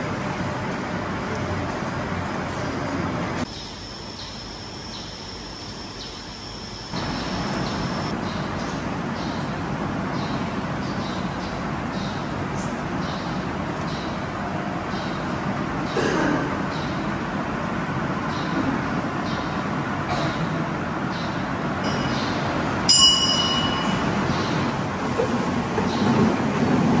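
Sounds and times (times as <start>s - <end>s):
bright metallic ring: 21.8s - 24.2s.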